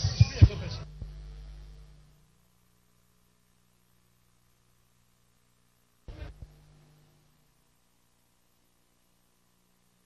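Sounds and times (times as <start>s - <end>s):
soft low thumps: 0.0s - 2.5s, 6.1s - 7.7s
low steady hum: 0.0s - 10.0s.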